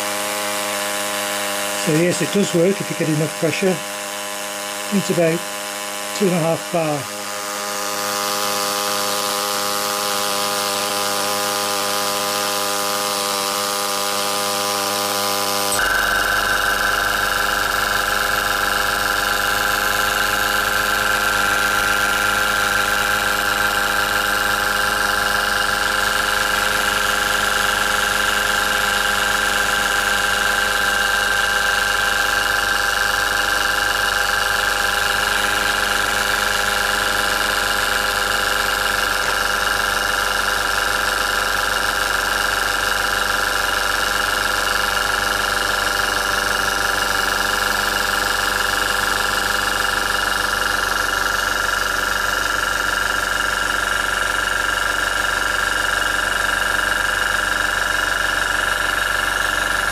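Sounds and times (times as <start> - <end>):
small steam engine buzzing: 0.0 - 59.9
high steady tone: 1.6 - 8.6, 15.7 - 23.1.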